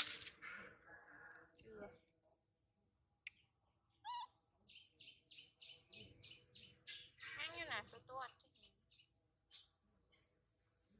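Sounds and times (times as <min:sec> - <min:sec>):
bird chirping: 0:03.3 - 0:10.3.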